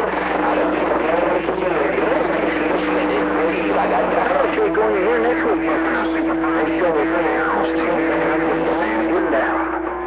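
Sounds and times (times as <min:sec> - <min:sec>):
garbled radio voices talking: 0:00.0 - 0:10.0
low heterodyne tone: 0:00.0 - 0:10.0.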